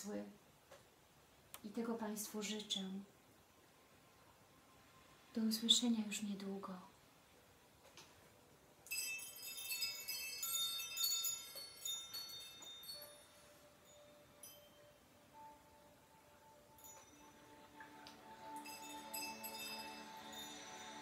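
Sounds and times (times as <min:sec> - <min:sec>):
chimes tinkling: 0:08.8 - 0:21.0.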